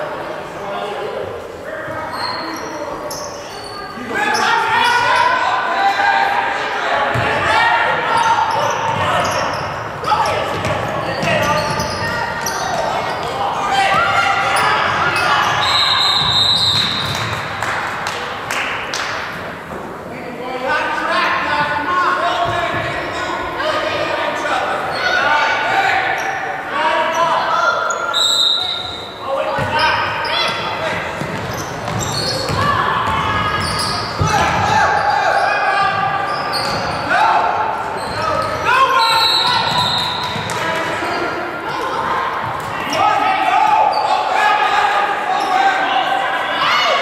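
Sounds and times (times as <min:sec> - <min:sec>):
people shouting in a gym: 0:00.7 - 0:17.3, 0:21.2 - 0:47.0
basketball bouncing on wooden court: 0:07.1 - 0:07.4, 0:10.3 - 0:12.8, 0:31.1 - 0:34.7.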